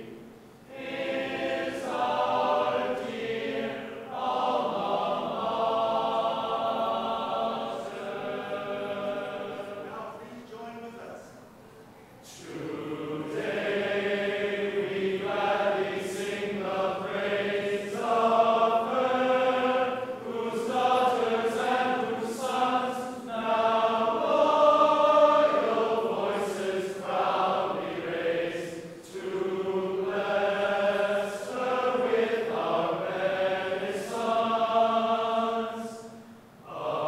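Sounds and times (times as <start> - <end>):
many voices singing slowly: 0.0 - 10.4, 11.6 - 37.0.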